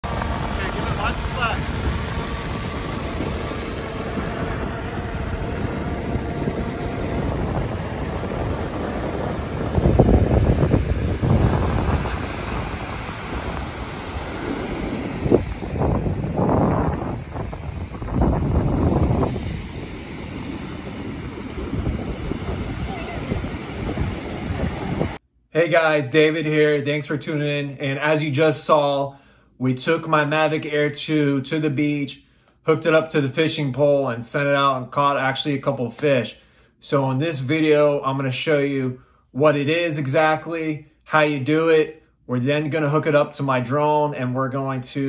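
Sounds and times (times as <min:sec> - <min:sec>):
drone propellers whining: 0:00.0 - 0:25.2
wind buffeting microphone: 0:00.0 - 0:25.2.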